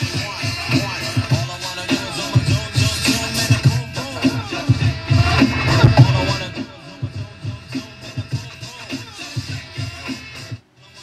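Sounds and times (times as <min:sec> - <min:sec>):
music with heavy bass beat: 0:00.0 - 0:11.0.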